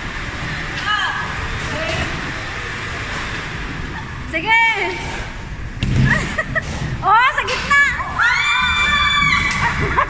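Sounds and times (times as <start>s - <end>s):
women shouting and squealing: 7.0s - 10.0s.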